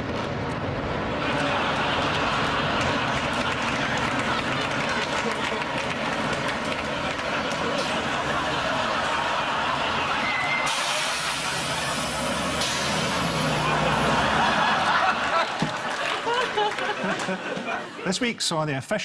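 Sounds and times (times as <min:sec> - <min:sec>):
bus diesel engine running: 0:00.0 - 0:15.5
people talking: 0:17.4 - 0:19.0.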